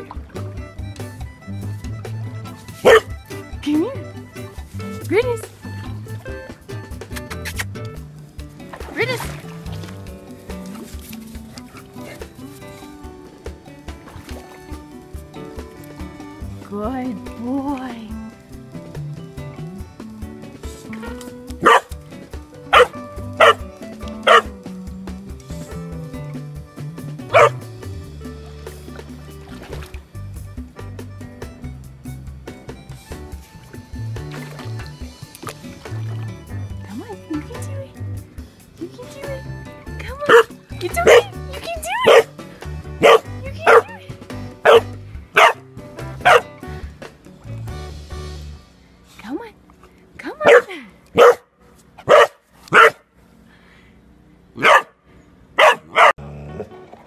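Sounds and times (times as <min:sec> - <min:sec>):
background music: 0:00.0 - 0:49.6, 0:55.6 - 0:57.0
puppy barking: 0:02.8 - 0:03.2, 0:21.6 - 0:22.0, 0:22.6 - 0:24.5, 0:27.3 - 0:27.6, 0:40.3 - 0:42.4, 0:43.0 - 0:44.0, 0:44.6 - 0:45.6, 0:46.2 - 0:46.5, 0:50.4 - 0:53.0, 0:54.6 - 0:55.0, 0:55.6 - 0:56.2.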